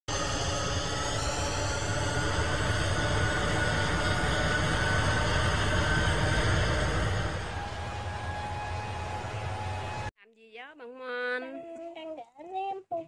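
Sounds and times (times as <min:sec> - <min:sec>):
jet engines running: 0:00.0 - 0:10.1.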